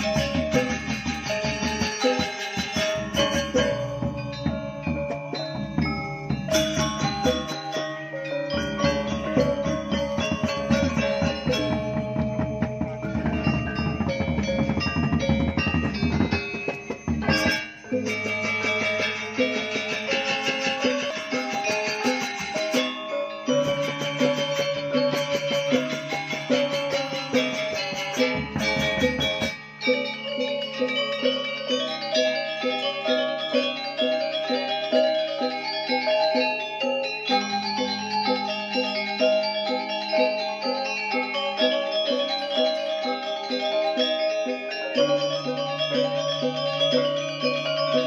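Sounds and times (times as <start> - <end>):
gongs: 0.0 - 48.0
metallophones struck rhythmically: 0.0 - 48.0
low drumming: 8.6 - 18.8.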